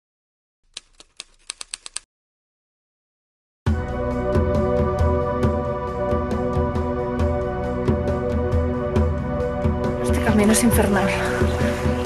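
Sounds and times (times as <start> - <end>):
typewriter key clicks: 0.7 - 2.0.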